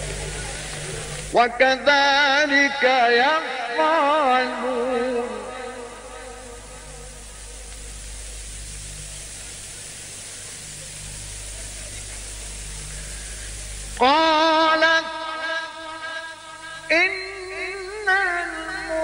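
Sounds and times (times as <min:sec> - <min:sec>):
man chanting recitation: 0:00.0 - 0:07.4, 0:14.0 - 0:19.0
recording hiss and hum: 0:00.0 - 0:19.0.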